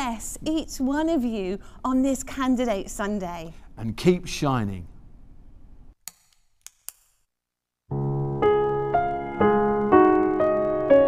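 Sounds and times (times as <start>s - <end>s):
faint background noise: 0.0s - 6.0s.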